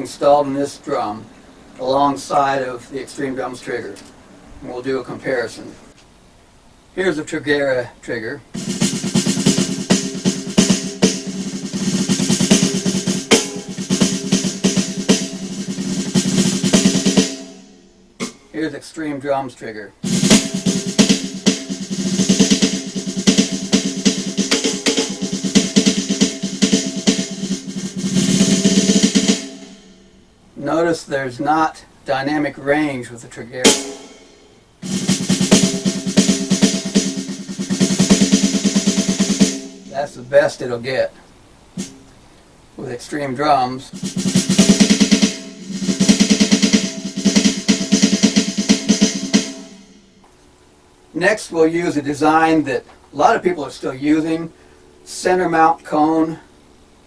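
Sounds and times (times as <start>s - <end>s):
electronic snare drum strokes and rolls: 8.5s - 18.6s, 20.0s - 30.2s, 33.6s - 40.2s, 41.7s - 42.1s, 43.9s - 50.3s.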